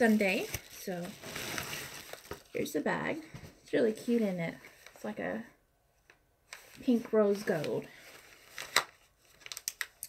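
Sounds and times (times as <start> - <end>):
packaging rustling: 0.0 - 2.7, 6.5 - 10.0
packaging clicks: 8.6 - 10.0.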